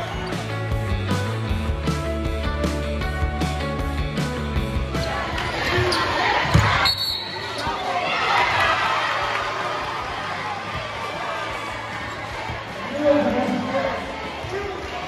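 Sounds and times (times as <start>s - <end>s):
guitar music: 0.0s - 5.3s
crowd noise in gymnasium: 0.0s - 15.0s.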